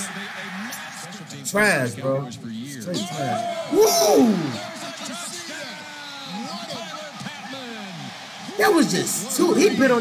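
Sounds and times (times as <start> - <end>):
man commentating on television: 0.0 - 10.0
surrounding talk: 0.0 - 10.0.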